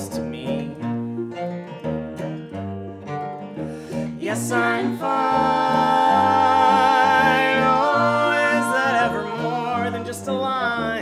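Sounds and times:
acoustic guitar and ukulele playing: 0.0 - 11.0.

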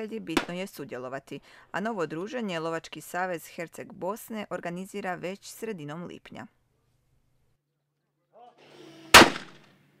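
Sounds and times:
shotgun shot: 9.0 - 9.7.

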